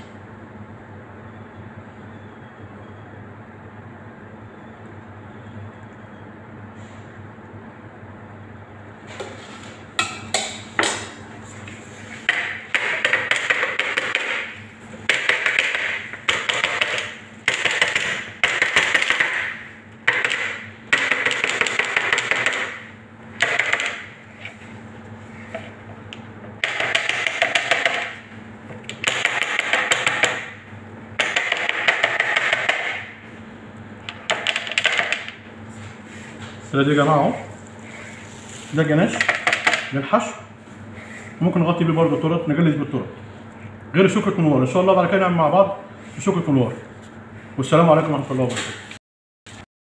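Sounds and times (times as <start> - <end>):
steady low hum: 0.0 - 48.9.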